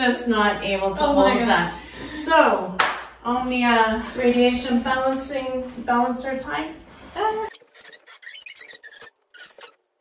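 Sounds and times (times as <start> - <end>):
small objects squeaking and clicking: 7.5 - 10.0.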